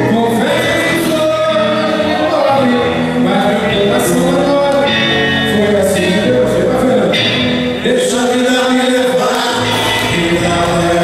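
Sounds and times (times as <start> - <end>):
bass guitar: 0.0 - 11.0
electric guitar: 0.0 - 11.0
keyboards: 0.0 - 11.0
person singing: 0.0 - 11.0.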